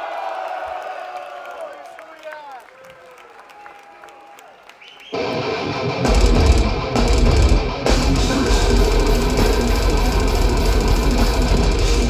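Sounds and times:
distorted electric guitars: 0:05.2 - 0:12.0
fast dense drumming: 0:06.0 - 0:12.0.

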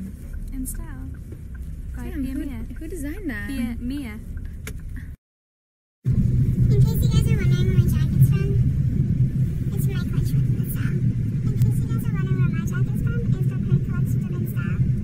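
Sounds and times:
car cabin rumble: 0:00.0 - 0:05.2, 0:06.1 - 0:15.0.

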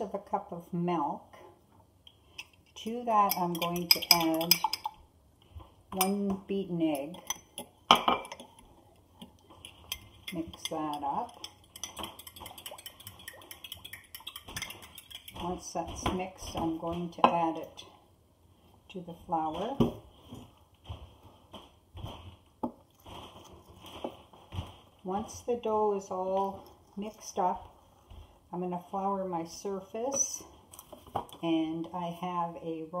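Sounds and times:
hand mixing wet dough in bowl: 0:02.7 - 0:04.8, 0:05.4 - 0:17.9, 0:18.7 - 0:31.0
utensil clicks and taps: 0:09.2 - 0:15.5.

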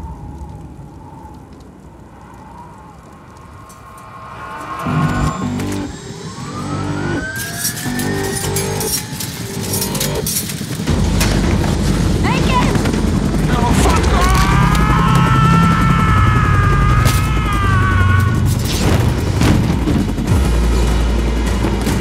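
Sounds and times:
low rumble: 0:00.0 - 0:22.0
pulsing rhythm with rising tones: 0:03.2 - 0:13.8, 0:18.4 - 0:22.0.

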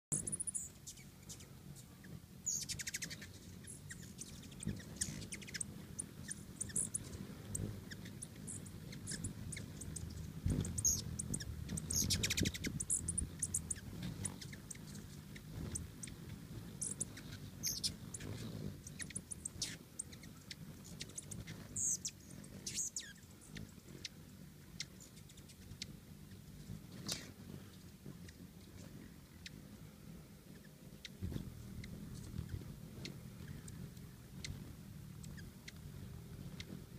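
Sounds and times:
hummingbird chip calls and chatters: 0:00.1 - 0:36.9
hummingbird wings humming: 0:00.1 - 0:36.9.

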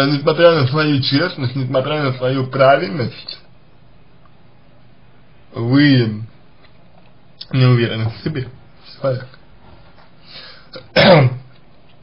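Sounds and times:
man clearing his throat: 0:10.7 - 0:11.5.

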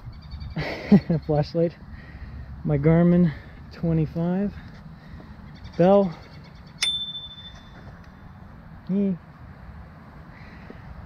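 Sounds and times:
bicycle bell ring: 0:06.8 - 0:08.4.

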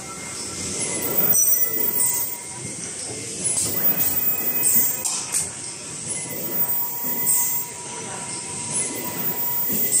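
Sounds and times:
faint steady whine: 0:00.0 - 0:10.0.

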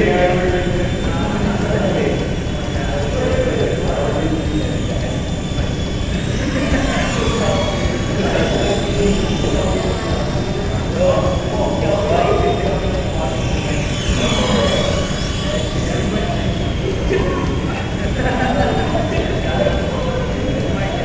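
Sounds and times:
toy helicopter motor whine: 0:00.0 - 0:21.0.

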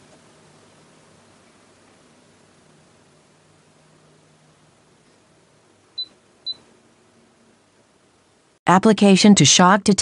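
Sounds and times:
air conditioner high-pitched beeps: 0:05.9 - 0:06.7.

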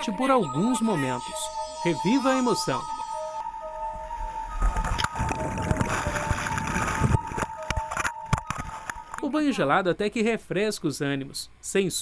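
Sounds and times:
music of long held notes: 0:00.0 - 0:09.7
water churning and splashing: 0:04.8 - 0:08.9.

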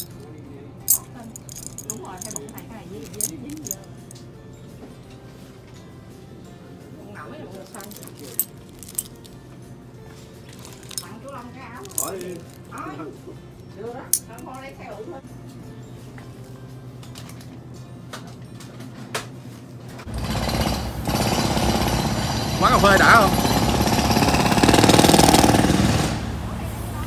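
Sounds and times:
background music: 0:00.0 - 0:19.4
machine pounding: 0:20.1 - 0:26.2.

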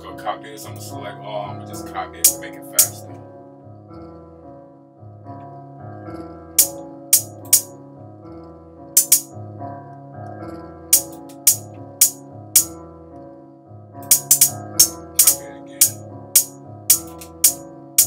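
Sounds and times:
repeating piano melody: 0:00.0 - 0:18.0
programmed hi-hat hits: 0:09.0 - 0:09.3, 0:11.0 - 0:12.7, 0:14.0 - 0:17.6.

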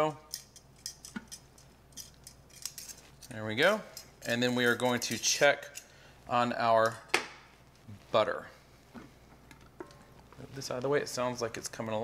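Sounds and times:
metal tongs clicking and tapping: 0:00.3 - 0:05.9.

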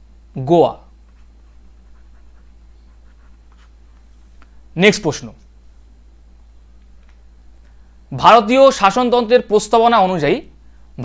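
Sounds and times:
low electrical hum: 0:00.0 - 0:11.0
stylus scratching and tapping tablet: 0:01.0 - 0:04.6.

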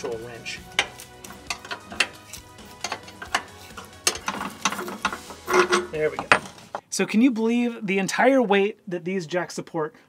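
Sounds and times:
hand wrench clicking: 0:00.7 - 0:06.6.

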